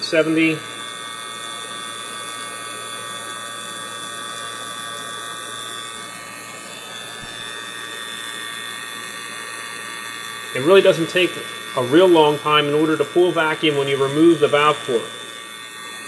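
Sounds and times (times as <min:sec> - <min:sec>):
vacuum pump running: 0:00.0 - 0:16.0.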